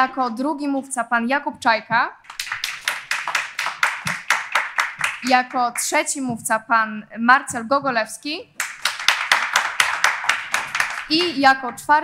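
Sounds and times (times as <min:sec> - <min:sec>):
audience applauding: 0:02.3 - 0:05.4, 0:08.6 - 0:11.2.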